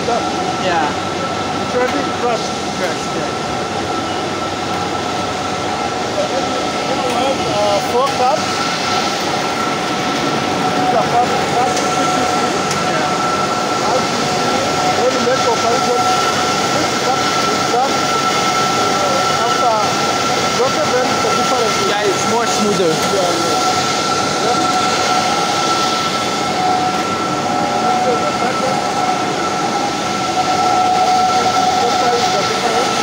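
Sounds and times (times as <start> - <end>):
high even whine: 0.0 - 33.0.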